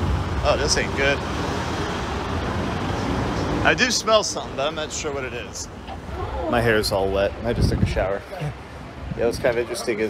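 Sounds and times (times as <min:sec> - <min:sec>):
fire engines idling: 0:00.0 - 0:10.0
street noise: 0:00.0 - 0:10.0.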